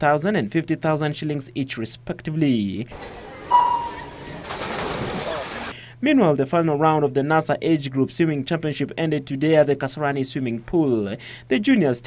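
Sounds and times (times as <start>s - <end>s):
swimmers splashing into pool: 2.9s - 5.7s
electronic start beep: 3.4s - 4.4s.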